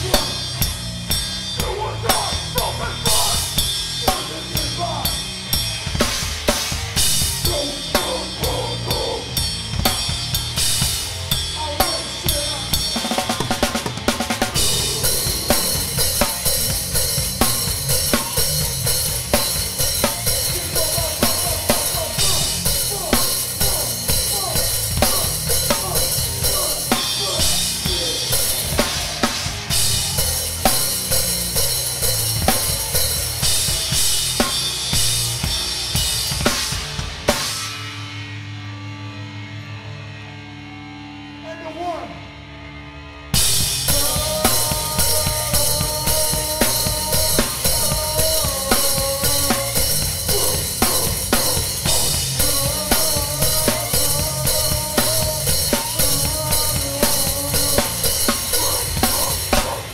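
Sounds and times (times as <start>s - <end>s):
drum kit hit hard and fast: 0.0s - 38.1s, 43.4s - 59.9s
hardcore band playing live: 0.0s - 59.9s.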